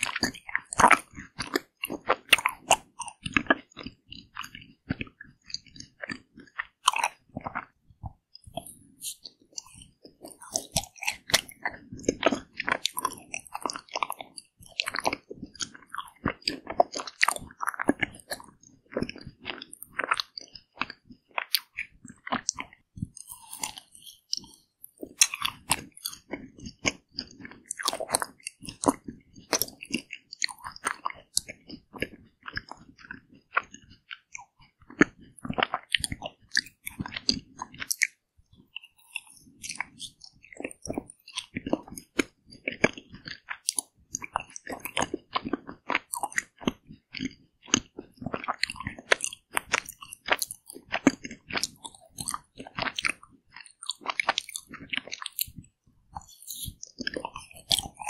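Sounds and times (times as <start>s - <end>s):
crunching frozen ice cream bar: 0.0s - 7.8s, 8.4s - 58.0s.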